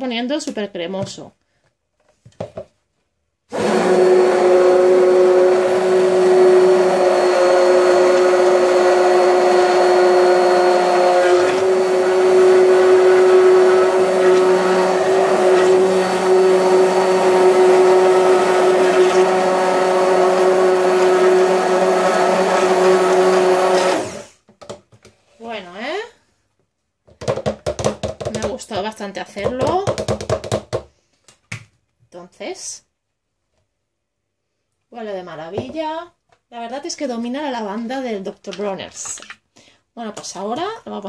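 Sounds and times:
stick blender motor hum: 0:03.5 - 0:24.4.

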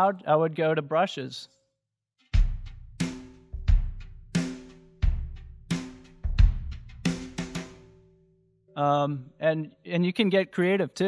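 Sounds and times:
drum kit playing slow groove: 0:02.4 - 0:07.9.

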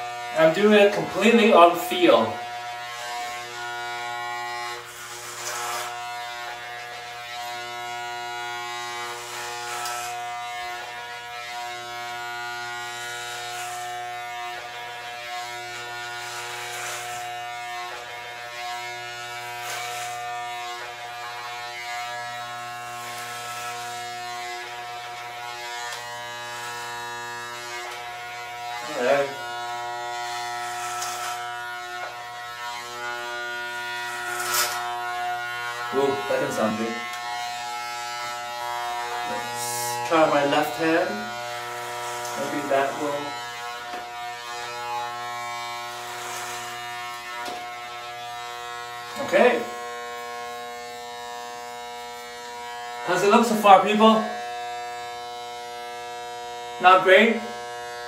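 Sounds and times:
electric hair clippers buzzing: 0:00.0 - 0:58.0.

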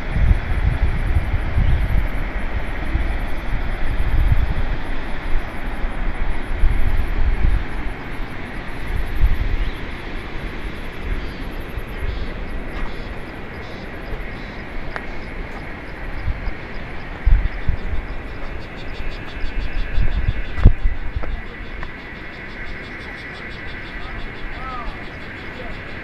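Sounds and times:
steady rushing background: 0:00.0 - 0:26.0
wind buffeting microphone: 0:00.0 - 0:26.0.

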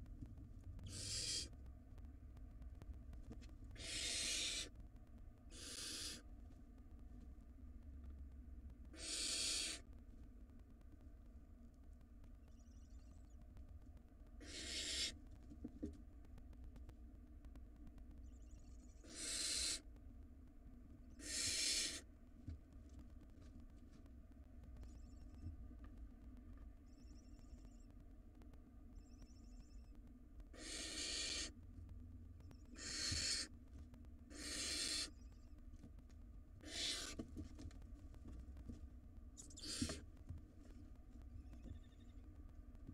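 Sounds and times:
owl nestlings hissing calls: 0:00.9 - 0:01.5, 0:03.8 - 0:04.7, 0:05.5 - 0:06.2, 0:08.9 - 0:09.8, 0:14.4 - 0:15.2, 0:19.0 - 0:19.8, 0:21.2 - 0:22.1, 0:30.6 - 0:31.5, 0:32.7 - 0:33.5, 0:34.3 - 0:35.2, 0:36.6 - 0:37.2, 0:39.4 - 0:40.0.

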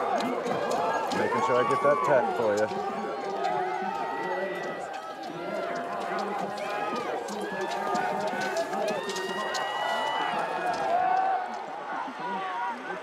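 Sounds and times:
ski poles clicking on snow: 0:00.0 - 0:11.7
people calling and shouting: 0:00.0 - 0:13.0.

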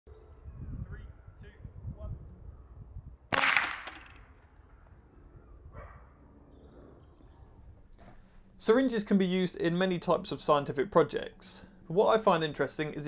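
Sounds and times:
sharp crack: 0:03.3 - 0:04.6.

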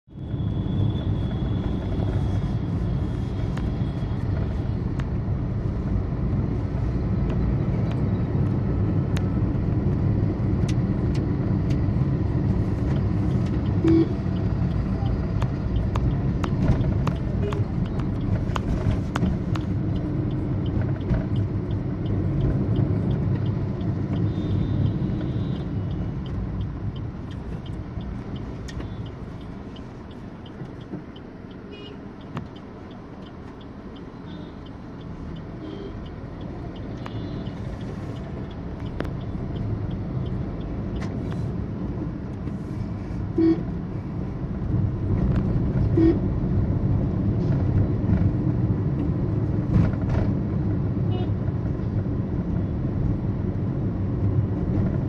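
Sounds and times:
car engine and tyre rumble: 0:00.0 - 0:55.0.

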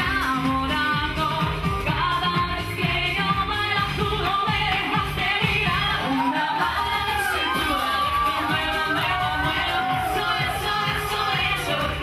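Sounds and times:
bass line: 0:00.0 - 0:12.0
person singing: 0:00.0 - 0:12.0.

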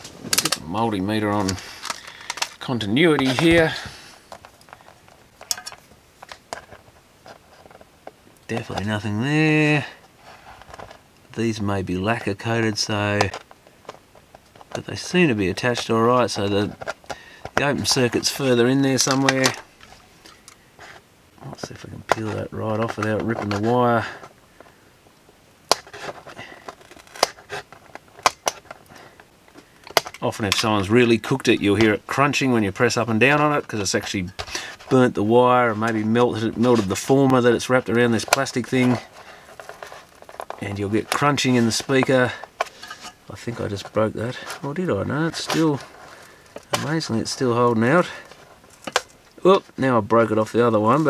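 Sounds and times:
paper clicks and crackles: 0:01.4 - 0:07.8, 0:21.6 - 0:24.7, 0:25.7 - 0:31.1, 0:35.7 - 0:44.7.

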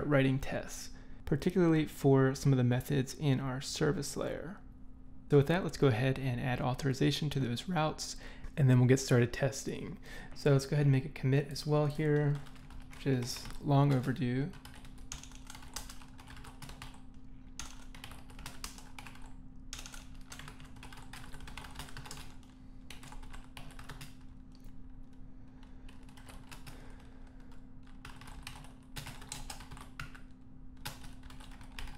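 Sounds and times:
typing on computer keyboard: 0:12.4 - 0:17.0, 0:17.6 - 0:24.6, 0:25.9 - 0:31.9.

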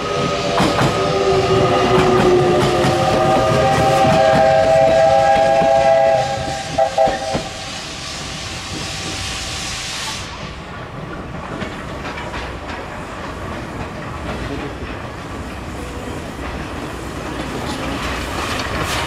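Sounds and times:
rail clatter: 0:00.0 - 0:19.0
steam hissing: 0:00.0 - 0:19.0
steam locomotive whistle: 0:00.9 - 0:10.4.

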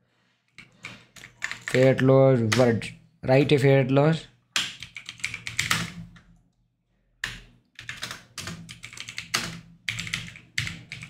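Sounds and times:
computer keyboard typing: 0:00.6 - 0:02.7, 0:04.6 - 0:06.0, 0:07.2 - 0:11.0.

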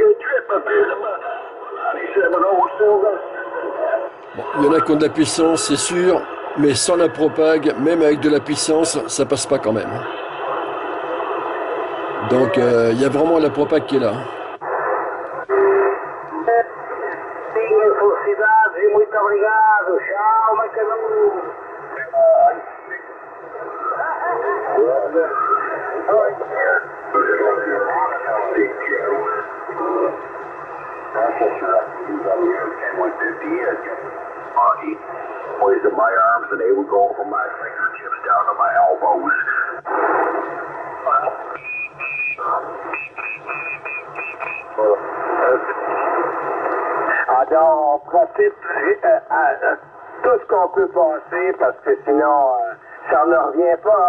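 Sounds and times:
radio speech with noise: 0:00.0 - 0:54.0.

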